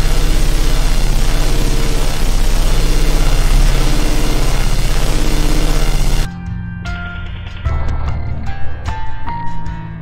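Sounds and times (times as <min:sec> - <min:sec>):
harsh engine-like droning: 0:00.0 - 0:06.3.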